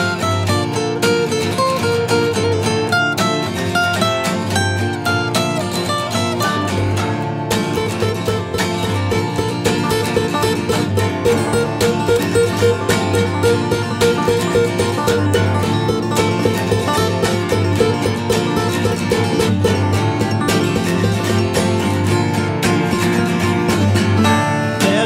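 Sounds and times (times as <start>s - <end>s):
acoustic guitars playing: 0.0s - 25.0s.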